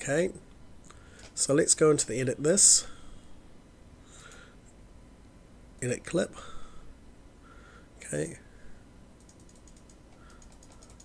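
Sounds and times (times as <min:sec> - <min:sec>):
keyboard keys clicking: 0:09.2 - 0:11.0.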